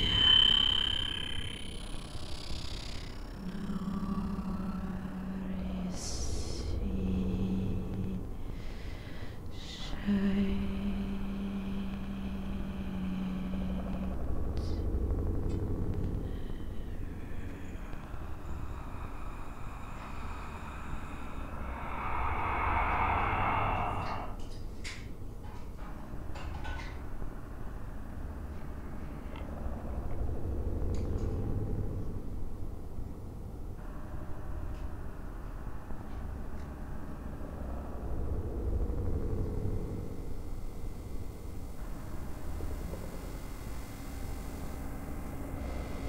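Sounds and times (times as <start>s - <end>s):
low rumble: 0.0s - 2.2s, 3.1s - 25.1s
high synthesizer tone: 0.0s - 3.1s
faint high tones: 0.0s - 4.9s, 20.0s - 24.5s
rushing band of noise: 20.1s - 24.6s.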